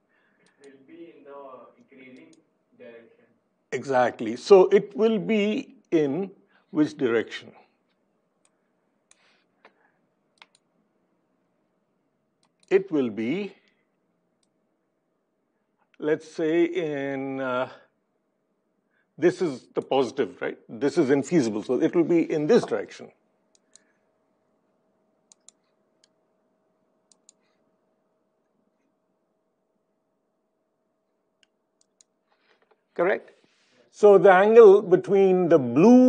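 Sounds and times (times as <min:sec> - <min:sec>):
faint steady hum: 0:00.0 - 0:36.0
computer mouse clicks: 0:08.4 - 0:09.8, 0:10.4 - 0:10.7, 0:12.4 - 0:12.7, 0:23.5 - 0:23.9, 0:25.3 - 0:26.2, 0:27.1 - 0:27.6, 0:31.4 - 0:32.8.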